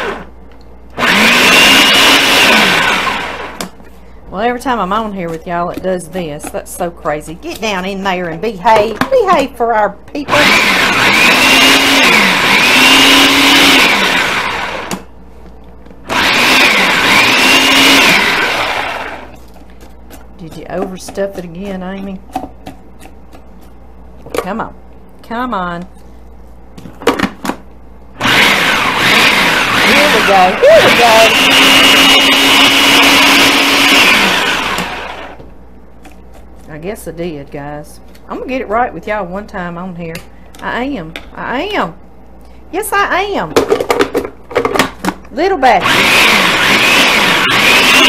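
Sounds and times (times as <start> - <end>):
food processor chopping cabbage: 1.0 - 3.7, 10.3 - 15.0, 16.1 - 19.3, 28.2 - 35.4, 45.8 - 48.0.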